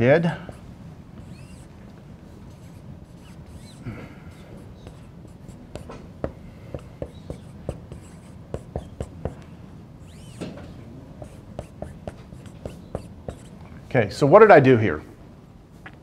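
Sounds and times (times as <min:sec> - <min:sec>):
low room hum: 0:00.0 - 0:16.0
pen tapping on a board: 0:05.7 - 0:09.4, 0:11.2 - 0:13.5.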